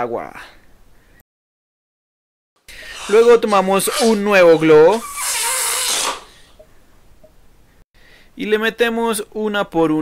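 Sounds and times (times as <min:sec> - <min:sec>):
air hissing out of balloon: 0:02.7 - 0:06.6.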